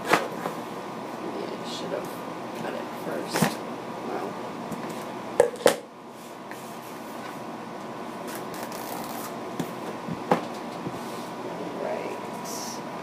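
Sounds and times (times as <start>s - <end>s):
scissors cutting paper: 8.3s - 9.3s.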